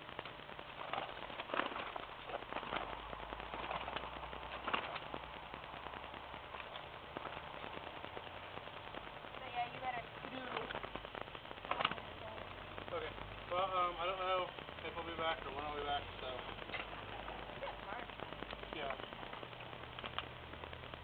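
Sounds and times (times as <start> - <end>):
faint distant voices: 0.0 - 20.0.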